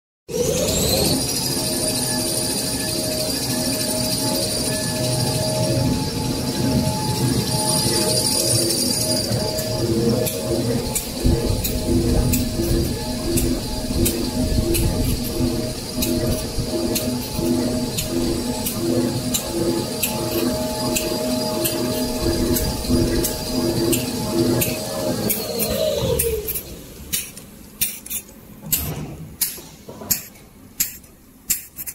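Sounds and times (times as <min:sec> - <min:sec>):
constant high whine: 0:00.3 - 0:31.9
low pulsing note: 0:04.2 - 0:26.6
paper machine clatter and rumble: 0:09.2 - 0:31.9.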